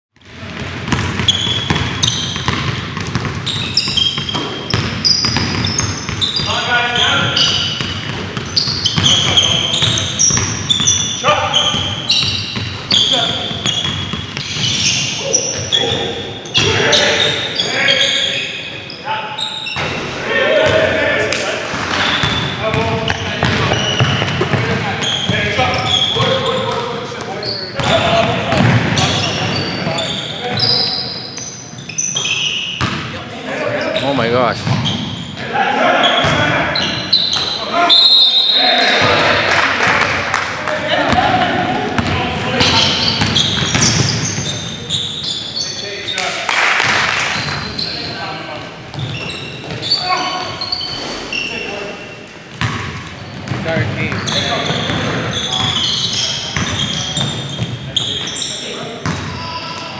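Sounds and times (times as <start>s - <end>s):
basketball bouncing: 0.2s - 6.5s, 7.2s - 11.0s, 11.6s - 14.9s, 22.2s - 24.8s, 27.8s - 29.8s, 32.8s - 33.0s, 34.6s - 35.0s, 42.0s - 44.5s, 52.6s - 55.8s, 59.0s - 59.3s
sneakers squeaking on hardwood: 0.2s - 20.9s, 21.9s - 39.4s, 41.0s - 46.4s, 47.2s - 59.9s
players calling out: 3.4s - 46.4s, 53.2s - 59.9s.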